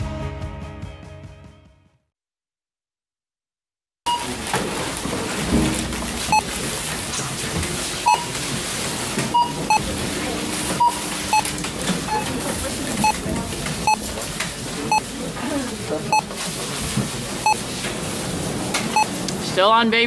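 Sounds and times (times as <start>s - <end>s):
barcode scanner beeping: 4.1s - 4.5s, 5.8s - 6.6s, 7.9s - 8.5s, 9.3s - 15.1s, 16.1s - 16.4s, 17.4s - 17.7s, 18.9s - 19.2s
store background hubbub: 4.1s - 20.0s.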